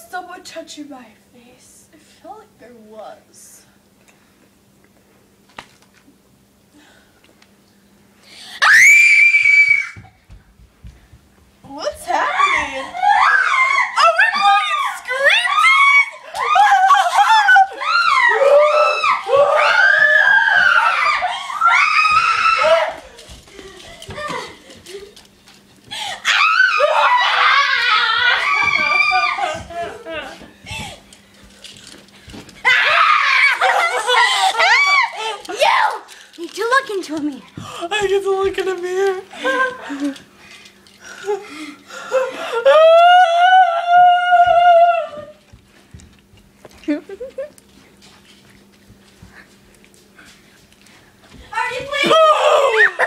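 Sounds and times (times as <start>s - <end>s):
girl screaming: 8.6s - 10.1s, 12.1s - 23.1s, 26.2s - 30.4s, 32.6s - 36.1s, 42.6s - 45.4s, 51.6s - 53.0s
laughter: 33.5s - 34.8s, 46.9s - 47.6s.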